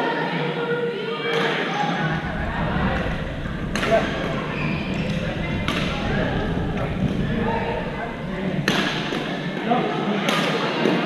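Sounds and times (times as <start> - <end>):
players' voices: 2.0 - 9.9.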